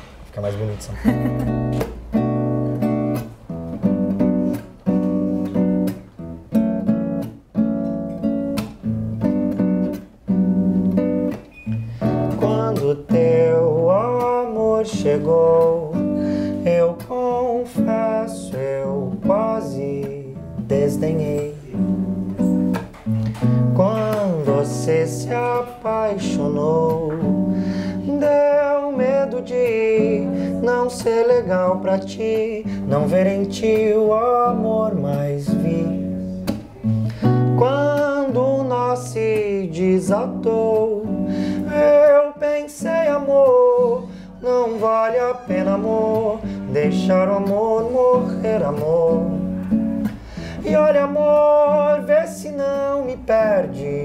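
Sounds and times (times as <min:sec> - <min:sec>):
acoustic guitar strumming chords: 0:00.0 - 0:54.0
person singing wordless melody: 0:12.3 - 0:22.6, 0:23.2 - 0:54.0.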